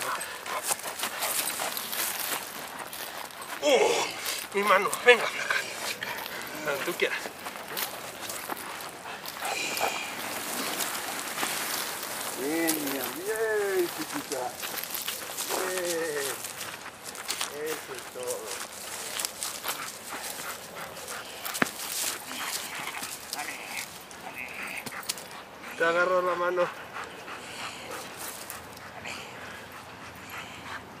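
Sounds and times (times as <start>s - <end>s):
dog panting: 0.0s - 13.2s, 13.8s - 31.0s
bite suit dragging on ground: 0.0s - 16.5s
footsteps on dry leaves: 0.0s - 24.6s.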